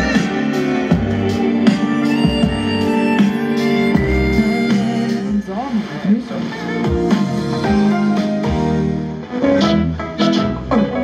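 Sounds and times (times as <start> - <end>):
gliding vocal line: 0.0 - 7.6
music from a radio speaker: 0.0 - 11.0.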